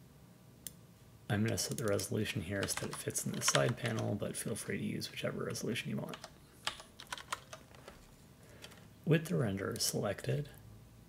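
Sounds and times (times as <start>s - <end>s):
computer keyboard typing: 1.4s - 4.1s, 6.1s - 8.8s.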